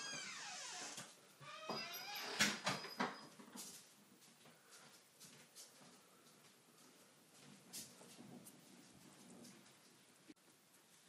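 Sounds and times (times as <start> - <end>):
door hinge creaking: 0.0 - 3.2
door closing and latching: 0.0 - 3.3.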